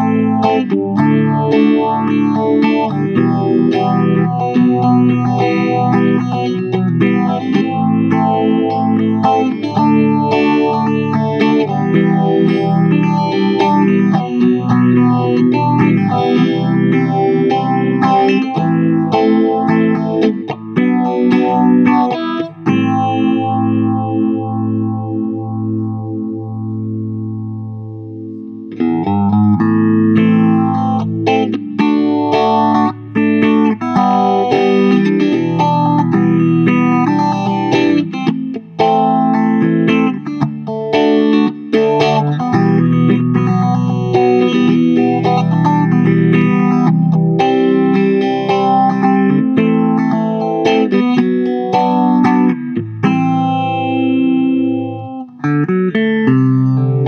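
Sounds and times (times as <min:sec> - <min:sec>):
electric guitar with phase effect: 0:00.0 - 0:57.0.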